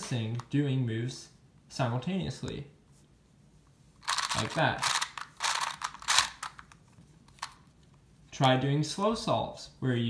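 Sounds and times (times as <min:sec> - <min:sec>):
puzzle wheels clicking: 0:04.0 - 0:06.7.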